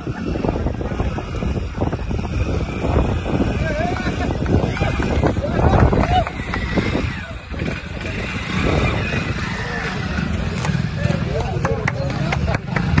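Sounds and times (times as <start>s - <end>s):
motorcycle engine running: 0.0s - 13.0s
people's voices: 0.0s - 13.0s.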